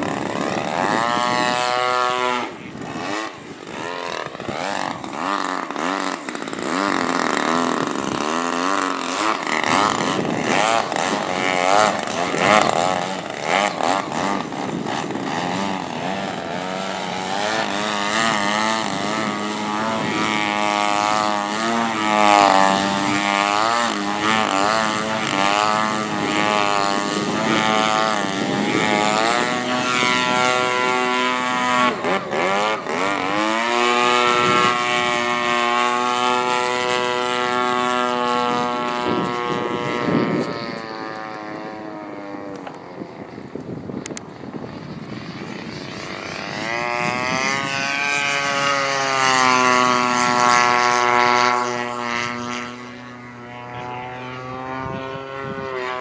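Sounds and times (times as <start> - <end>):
model plane engine and propeller: 0.0 - 56.0.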